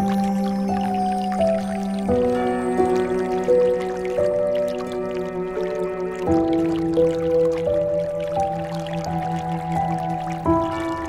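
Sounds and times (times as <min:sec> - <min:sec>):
slow calm instrumental music: 0:00.0 - 0:11.0.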